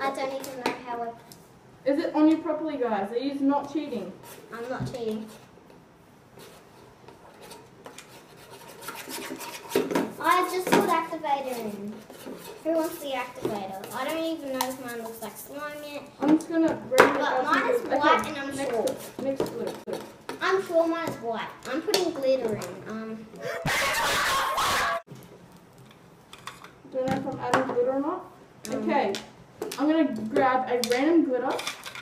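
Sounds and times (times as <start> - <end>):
spoons scraping against bowls: 6.4 - 15.4
child shrieking: 23.4 - 25.0.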